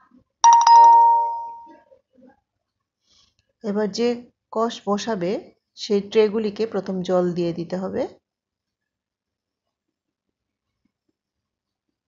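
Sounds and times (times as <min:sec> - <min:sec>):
bell-like chime ringing: 0:00.4 - 0:01.7.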